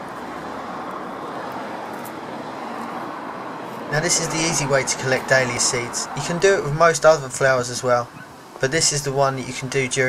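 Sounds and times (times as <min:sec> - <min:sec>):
distant road traffic: 0:00.0 - 0:10.0.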